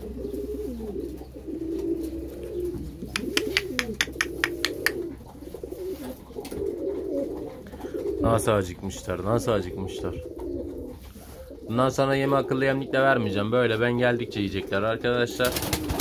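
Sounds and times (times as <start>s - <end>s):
pigeons cooing: 0.0s - 16.0s
sharp clicks: 3.0s - 5.0s.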